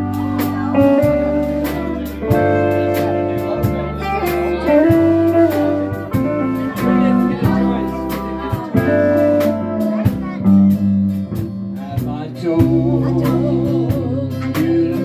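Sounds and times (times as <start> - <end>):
electric bass: 0.0 - 15.0
electric guitar: 0.0 - 15.0
pedal steel guitar melody: 0.0 - 15.0
strummed acoustic guitar: 0.0 - 15.0.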